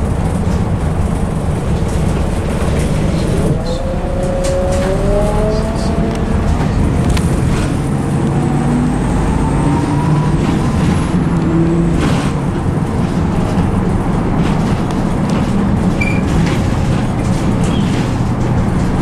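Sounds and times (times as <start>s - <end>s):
rising engine whine: 0.0s - 13.0s
bus engine and road rumble: 0.0s - 19.0s.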